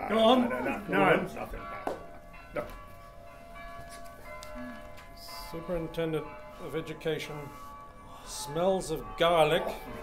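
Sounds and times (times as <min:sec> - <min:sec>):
faint church bells ringing: 0:00.0 - 0:10.0.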